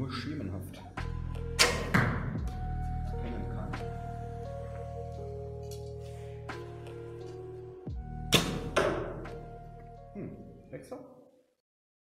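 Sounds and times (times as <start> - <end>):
background music with held notes: 0.0 - 11.1
arrow striking target: 1.6 - 2.3, 8.3 - 9.4.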